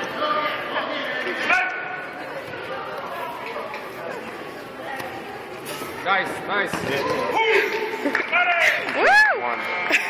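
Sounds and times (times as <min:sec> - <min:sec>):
chatter echoing in large hall: 0:00.0 - 0:10.0.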